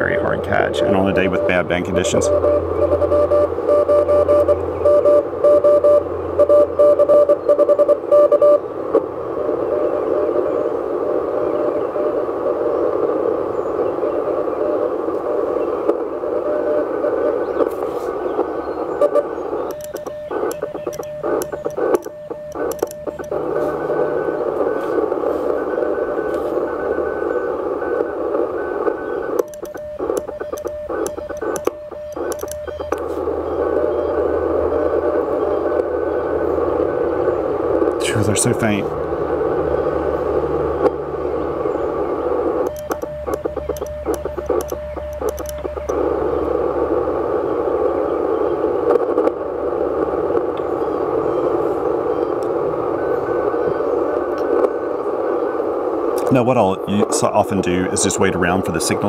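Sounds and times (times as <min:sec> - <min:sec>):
faint morse code signal: 0:00.0 - 0:08.6, 0:09.4 - 0:59.0
morse sidetone beeps: 0:00.0 - 0:08.6, 0:19.0 - 0:34.2, 0:42.6 - 0:46.0
shortwave receiver hiss: 0:00.0 - 0:59.0.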